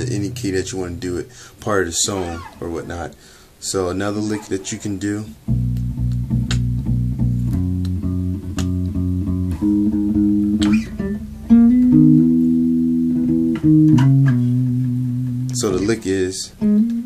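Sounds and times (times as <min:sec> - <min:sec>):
electric bass guitar playing: 0:00.0 - 0:01.2, 0:04.0 - 0:17.0.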